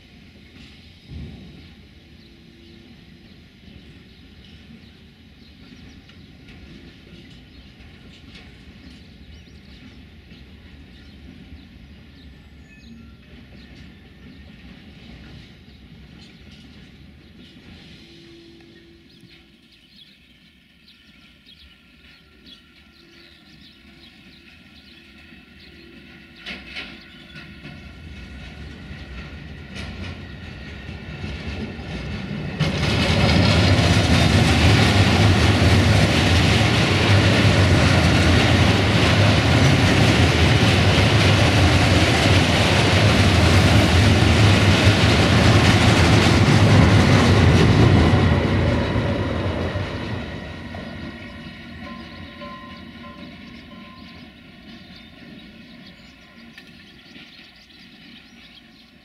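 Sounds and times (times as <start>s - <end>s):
freight train wagons rattling: 0.0s - 59.0s.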